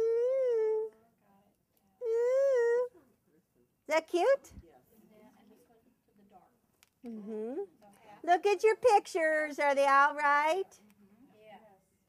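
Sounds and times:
woman humming: 0:00.0 - 0:01.0, 0:02.0 - 0:02.9, 0:07.0 - 0:07.7.

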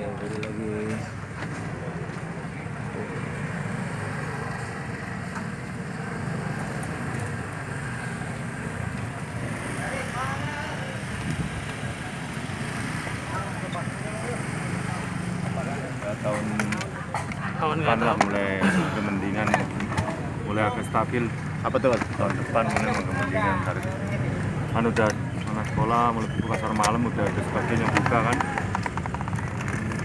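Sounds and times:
motorbike traffic rumbling: 0:00.0 - 0:30.0
voices in background: 0:00.0 - 0:30.0.

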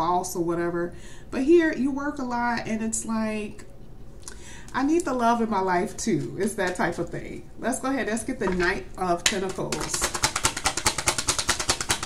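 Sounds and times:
cards being shuffled: 0:09.5 - 0:12.0.

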